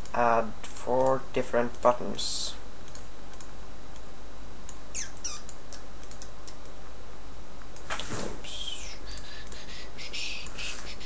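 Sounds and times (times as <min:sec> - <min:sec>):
steady low hum: 0:00.0 - 0:11.0
computer mouse clicking: 0:02.8 - 0:04.1, 0:04.7 - 0:06.8
high falling squeaks: 0:04.9 - 0:05.6.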